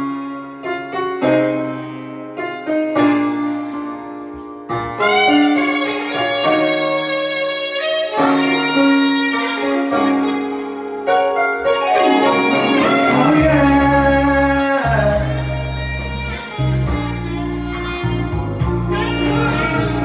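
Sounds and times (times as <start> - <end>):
piano chords with strings: 0.0 - 20.0.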